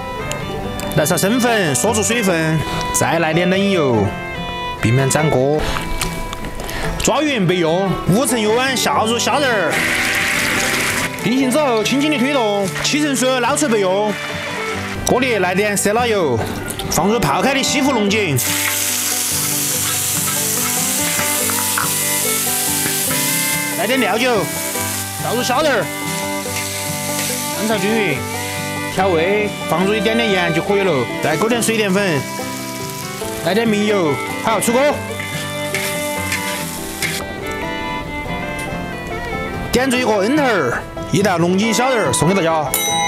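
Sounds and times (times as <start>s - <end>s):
background music with bowed strings: 0.0s - 43.0s
tea leaves sizzling in a wok: 9.6s - 12.9s, 18.4s - 29.0s, 31.1s - 37.2s
metal spatula stirring: 18.4s - 25.2s, 25.9s - 27.8s, 35.1s - 37.2s.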